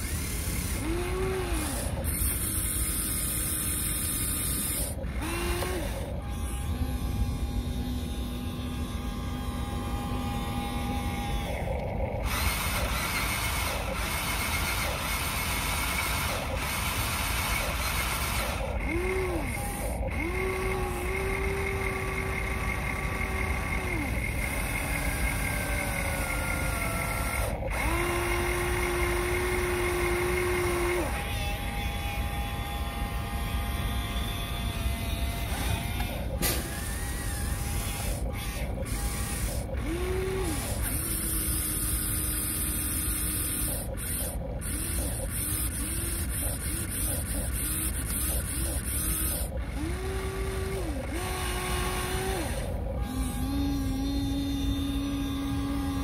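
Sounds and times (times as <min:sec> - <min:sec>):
electric motors whining: 0:00.0 - 0:56.0.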